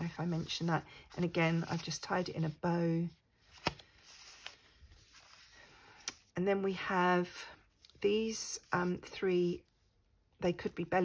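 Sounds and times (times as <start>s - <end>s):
paper page turning: 0.0s - 2.6s, 3.4s - 6.3s.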